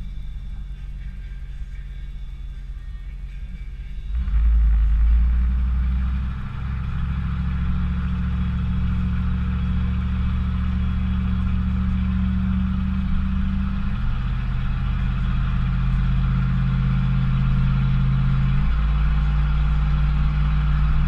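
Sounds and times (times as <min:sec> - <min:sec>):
truck engine pulling: 0:00.0 - 0:21.0.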